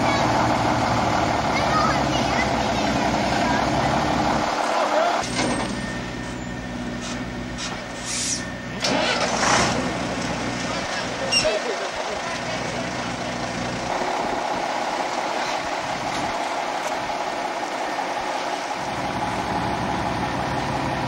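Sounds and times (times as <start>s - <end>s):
truck diesel engine running: 0.0s - 21.0s.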